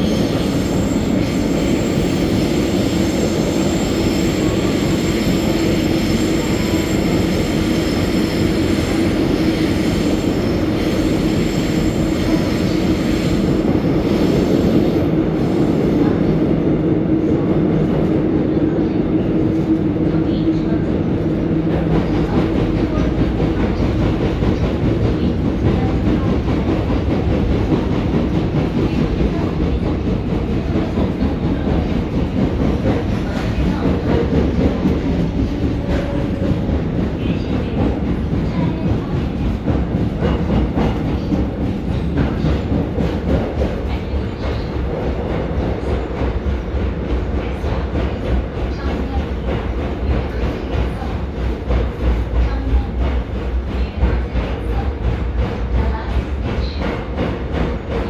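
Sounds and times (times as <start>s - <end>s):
train rumbling in tunnel: 0.0s - 58.0s.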